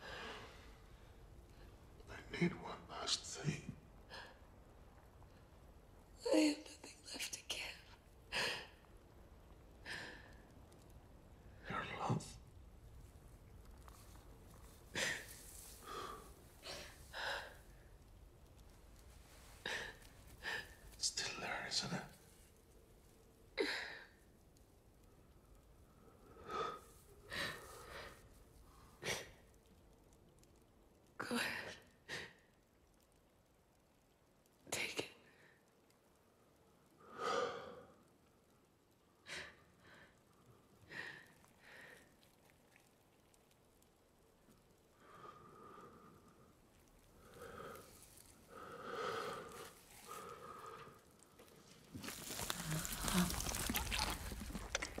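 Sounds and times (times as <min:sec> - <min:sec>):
person sighing: 0:52.0 - 0:55.0.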